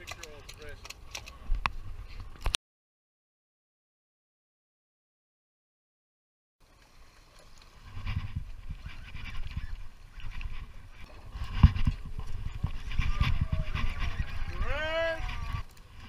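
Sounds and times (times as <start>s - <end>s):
wind buffeting microphone: 7.8s - 16.0s.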